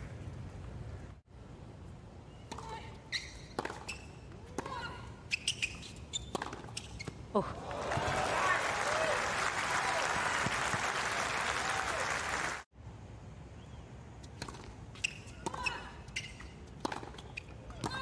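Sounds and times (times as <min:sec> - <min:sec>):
shoe squeaks: 0:03.0 - 0:07.3, 0:14.2 - 0:18.0
racket striking ball: 0:06.3 - 0:06.8, 0:16.8 - 0:17.2
crowd cheering and applauding: 0:07.6 - 0:12.7.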